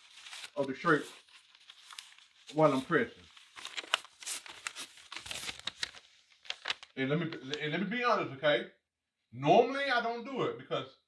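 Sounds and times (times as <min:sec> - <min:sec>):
paper crinkling and rustling: 0:00.0 - 0:07.6.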